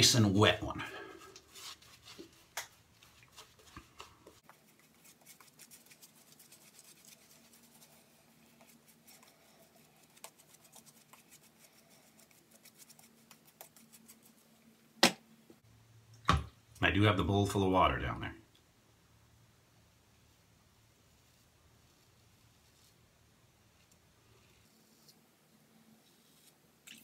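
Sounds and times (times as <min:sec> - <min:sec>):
shaving brush swirling lather: 0:01.4 - 0:14.5.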